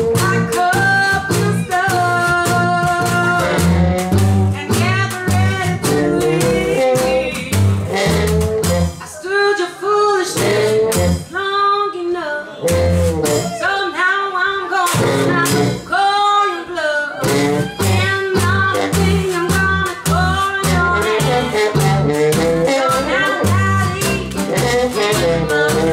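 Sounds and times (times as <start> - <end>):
plucked double bass: 0.0 - 9.2, 10.2 - 11.5, 12.6 - 13.6, 14.9 - 16.0, 17.2 - 25.9
strummed banjo: 0.0 - 9.6, 10.2 - 11.5, 12.4 - 13.6, 14.6 - 25.9
woman singing: 0.0 - 25.9.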